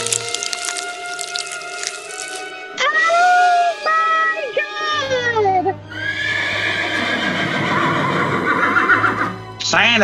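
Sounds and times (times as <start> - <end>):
horse whinnying: 5.9 - 9.4.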